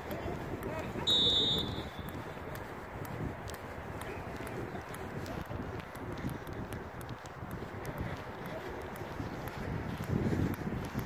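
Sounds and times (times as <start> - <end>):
background hubbub: 0.0 - 11.0.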